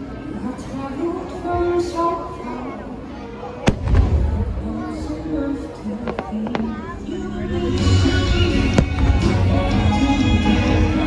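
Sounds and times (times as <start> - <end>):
firework bang: 3.7 - 4.6, 8.8 - 9.4
music over loudspeakers: 3.8 - 11.0.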